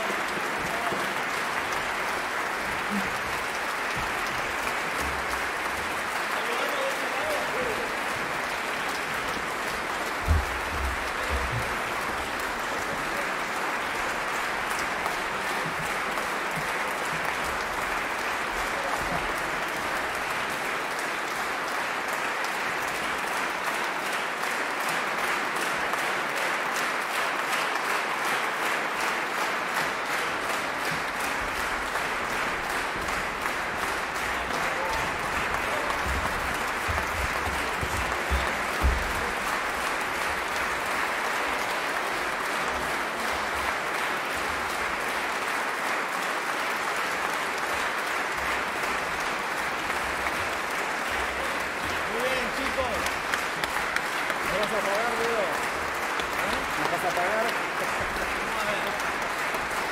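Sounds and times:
large audience applauding: 0.0 - 59.9.

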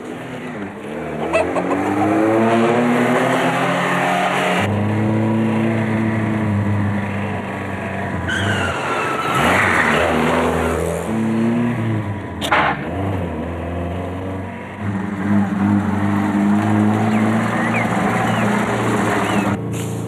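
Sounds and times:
car engine revving: 0.4 - 19.8
tyre squeal: 8.3 - 10.1.

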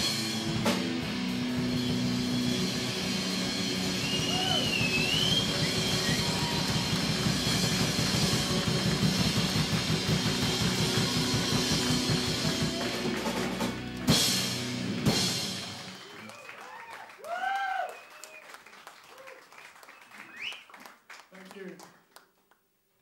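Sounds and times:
metal band playing live: 0.0 - 16.0.

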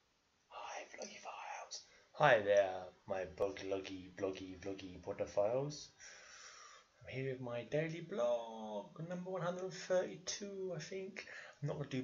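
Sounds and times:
man whispering: 0.5 - 6.0, 7.0 - 12.0.

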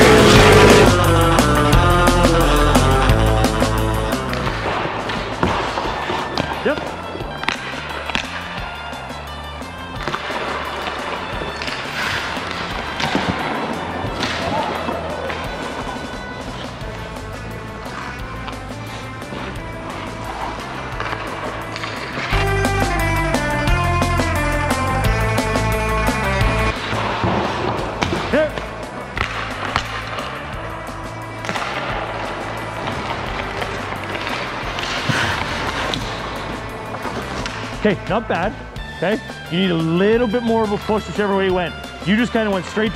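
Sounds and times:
rock music: 0.0 - 5.7, 6.3 - 42.9
sticks hitting pucks: 4.1 - 9.1, 9.9 - 23.8, 26.1 - 38.8
skates scraping on ice: 4.2 - 22.7, 26.3 - 41.3.

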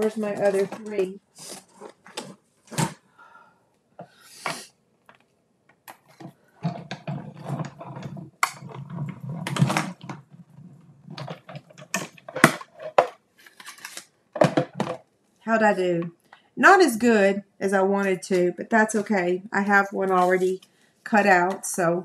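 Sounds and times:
plastic plates clicking and clattering: 5.7 - 15.1.

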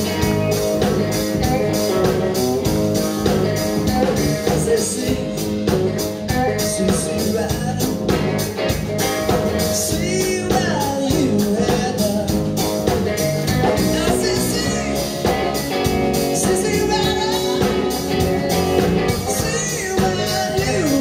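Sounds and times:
drum kit beat: 0.0 - 21.0
electric bass: 0.0 - 21.0
electric guitar: 0.0 - 21.0.

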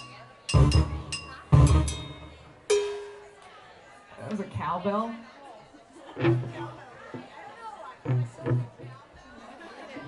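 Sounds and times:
ringing struck instrument note: 0.0 - 3.4.

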